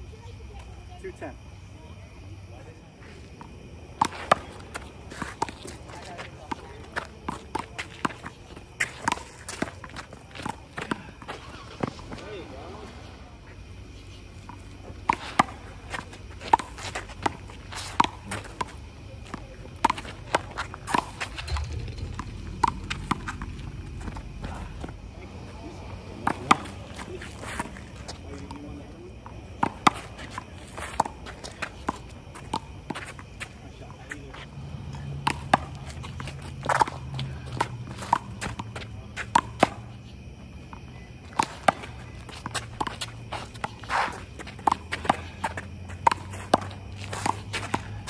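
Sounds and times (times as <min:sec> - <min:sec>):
sneaker footsteps on concrete: 0:03.0 - 0:48.0.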